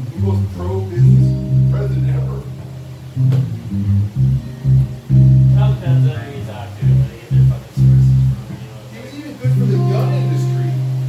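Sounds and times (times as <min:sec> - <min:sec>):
plucked guitar: 0:00.0 - 0:08.6, 0:09.5 - 0:11.0
bass guitar low notes: 0:00.0 - 0:08.9, 0:09.5 - 0:11.0.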